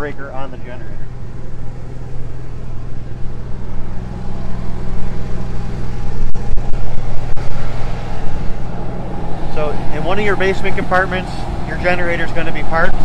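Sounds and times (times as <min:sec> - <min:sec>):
generator running: 0:00.0 - 0:13.0.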